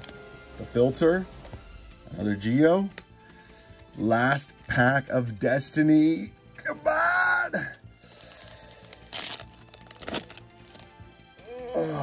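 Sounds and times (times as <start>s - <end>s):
faint background music: 0.0s - 12.0s
foil wrapper tearing: 8.0s - 11.0s.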